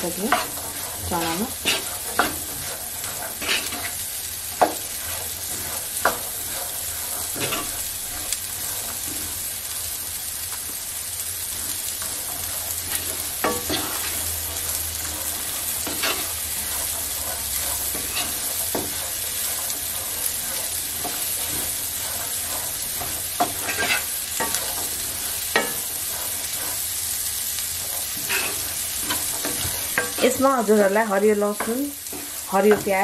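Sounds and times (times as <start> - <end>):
food sizzling in oil: 0.0 - 33.0
wooden spatula scraping a pan: 0.0 - 33.0.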